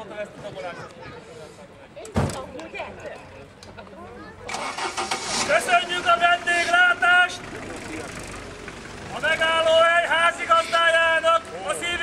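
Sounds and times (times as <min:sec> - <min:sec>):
faint background voices: 0:00.0 - 0:09.8.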